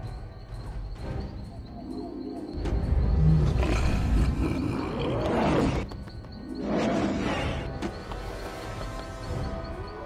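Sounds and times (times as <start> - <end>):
dark background music: 0.0 - 10.0.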